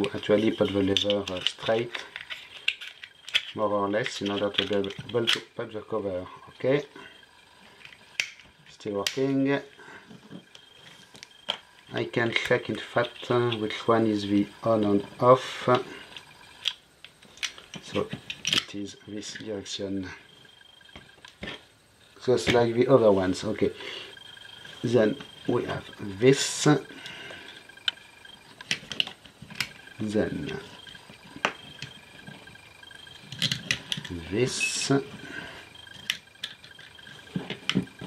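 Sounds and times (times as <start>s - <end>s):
quiet handling: 0.0s - 38.0s.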